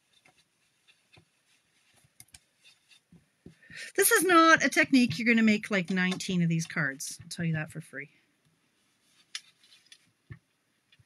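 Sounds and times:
soft rubbing: 0:00.0 - 0:07.7, 0:08.6 - 0:10.4
ink dauber tapping: 0:04.7 - 0:07.7.

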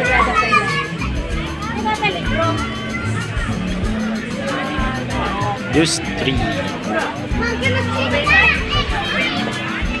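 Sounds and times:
children chattering: 0:00.0 - 0:10.0
background music with bass: 0:01.0 - 0:10.0.

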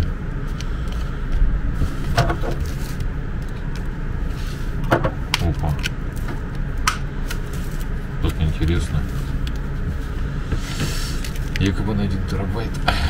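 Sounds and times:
low background rumble: 0:00.0 - 0:13.0
plastic packaging crinkling: 0:01.8 - 0:04.2, 0:05.4 - 0:09.8.

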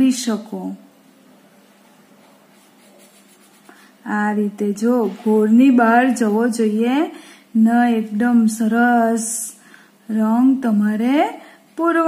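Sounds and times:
felt-tip pen scratching on paper: 0:02.5 - 0:03.8.

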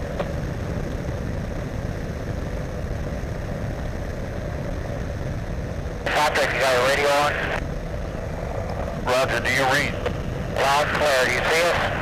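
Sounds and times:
ultralight engine and propeller: 0:00.0 - 0:12.0.

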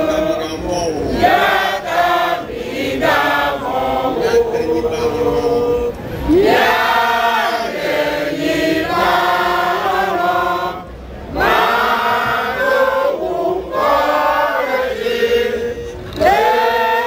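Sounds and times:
group singing a chant: 0:00.0 - 0:17.0.

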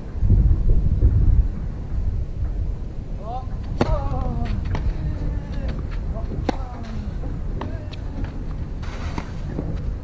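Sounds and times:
low microphone rumble: 0:00.0 - 0:10.0
racket striking tennis ball: 0:06.4 - 0:07.0.

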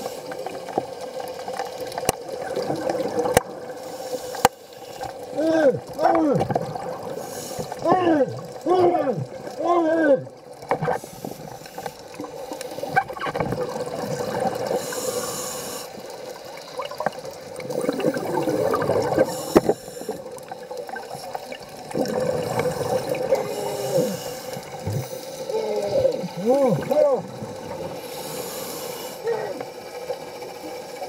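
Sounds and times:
gurgling exhaled bubbles: 0:00.0 - 0:03.9, 0:05.0 - 0:31.0
diver's regulator hissing inhale: 0:03.8 - 0:05.0, 0:07.1 - 0:07.8, 0:10.9 - 0:13.0, 0:14.7 - 0:16.1, 0:18.4 - 0:20.4, 0:22.4 - 0:25.5, 0:27.8 - 0:29.2.

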